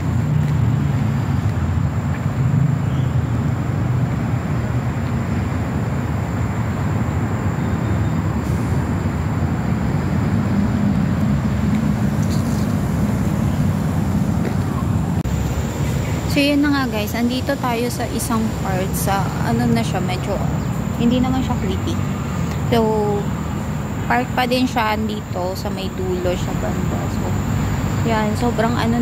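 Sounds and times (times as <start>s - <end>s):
wind buffeting microphone: 3.3s - 29.0s.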